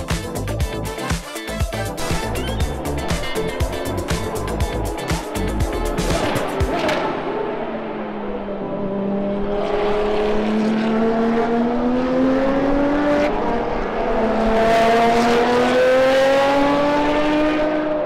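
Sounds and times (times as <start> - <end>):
race car engines accelerating: 2.0 - 18.0.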